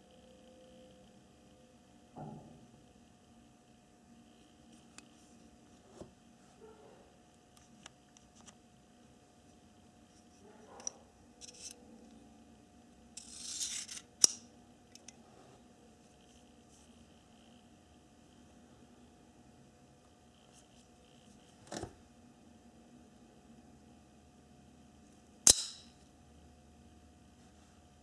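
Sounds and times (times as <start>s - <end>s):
knife slider scraping metal: 11.4s - 11.8s, 13.2s - 14.4s
knife blade metallic click: 25.5s - 26.0s.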